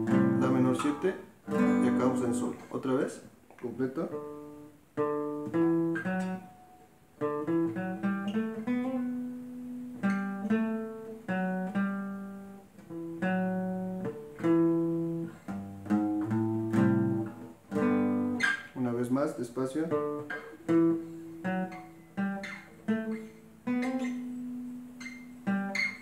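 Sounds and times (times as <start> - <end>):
acoustic guitar: 0.0 - 26.0.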